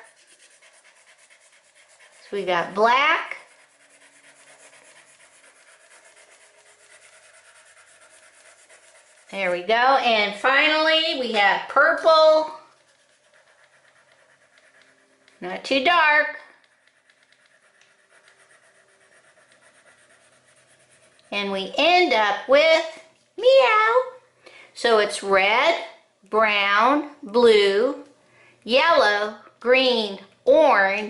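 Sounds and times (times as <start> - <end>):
crayon scratching on paper: 0.0 - 9.7, 12.1 - 21.4.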